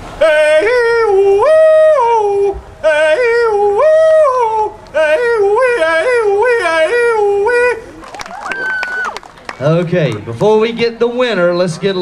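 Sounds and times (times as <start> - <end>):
man hollering with yodel-like breaks: 0.2 - 8.1.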